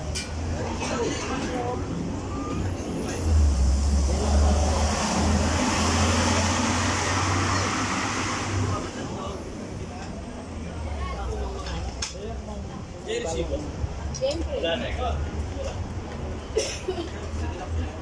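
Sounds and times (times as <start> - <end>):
large vehicle engine rumbling: 0.0 - 18.0.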